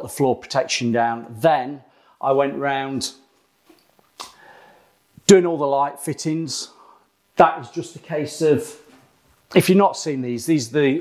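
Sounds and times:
man speaking: 0.0 - 3.2, 5.2 - 6.8, 7.4 - 11.0
man breathing in through nose: 4.3 - 5.0, 6.8 - 7.2.

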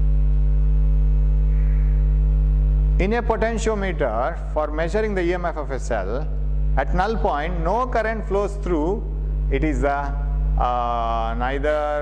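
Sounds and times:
mains hum: 0.0 - 12.0.

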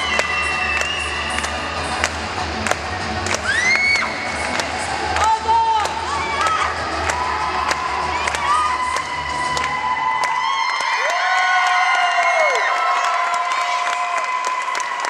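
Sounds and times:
dance music: 0.0 - 11.1
scattered clapping: 0.0 - 15.0
children cheering and shouting: 3.4 - 4.2, 5.4 - 15.0.

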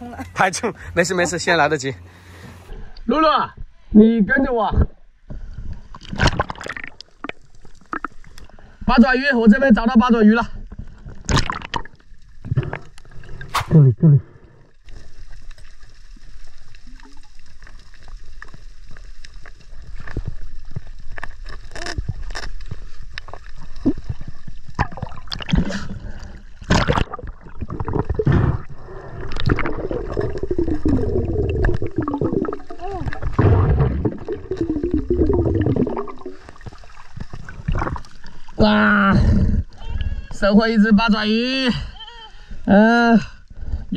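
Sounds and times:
muffled voice underwater: 30.7 - 33.3, 38.6 - 40.5.

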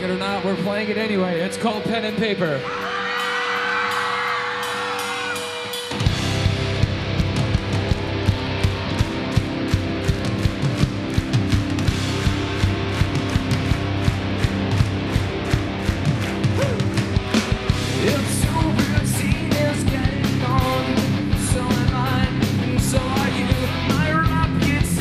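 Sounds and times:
bass: 0.0 - 25.0
drum kit beat: 0.0 - 25.0
electric guitars: 0.0 - 25.0.

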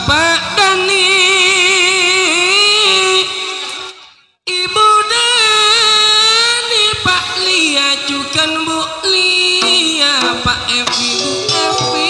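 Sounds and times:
gamelan music: 10.9 - 12.0.

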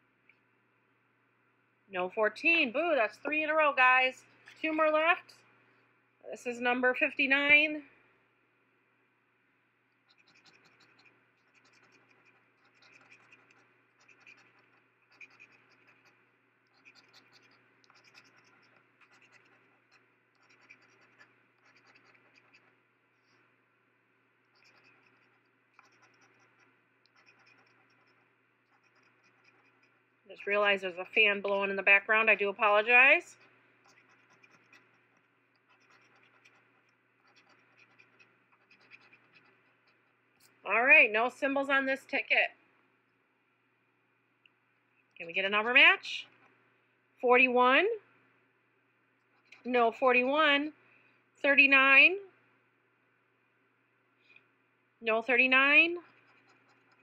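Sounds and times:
low fan hum: 0.0 - 35.9.

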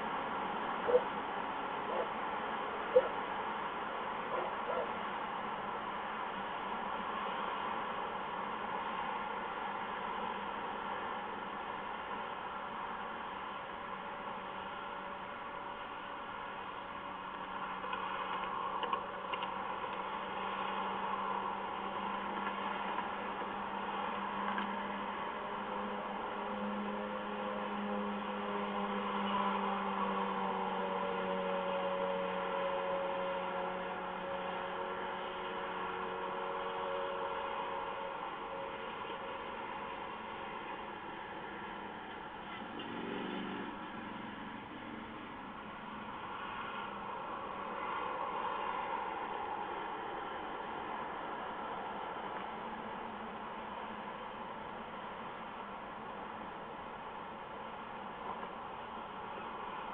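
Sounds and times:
faint droning tone: 0.0 - 59.9.

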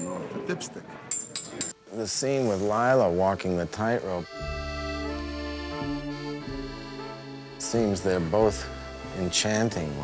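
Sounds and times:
sustained orchestral chords: 4.2 - 10.0.

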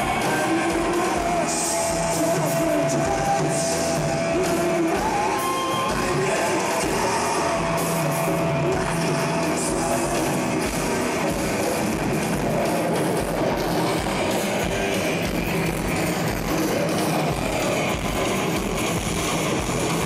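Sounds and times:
drums: 0.0 - 20.0
electric guitar: 0.0 - 20.0
live rock band: 0.0 - 20.0.

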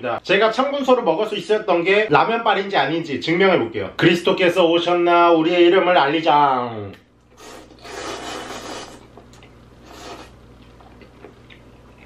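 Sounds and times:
person slurping noodles: 7.3 - 9.1, 9.8 - 10.4.

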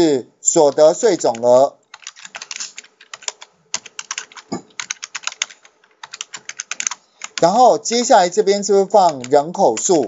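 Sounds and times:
fast computer keyboard typing: 0.6 - 10.0.

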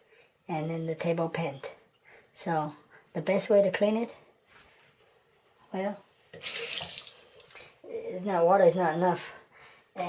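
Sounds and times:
tap water running into sink: 6.4 - 7.6.

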